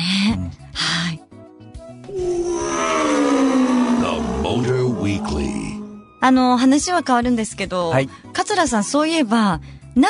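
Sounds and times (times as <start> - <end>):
processed voice drawing out word: 2.1 - 6.1
hissing sweep: 2.1 - 6.3.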